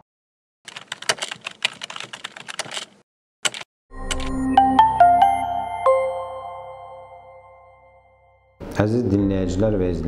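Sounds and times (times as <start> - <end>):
keyboard typing: 0.7 - 4.4.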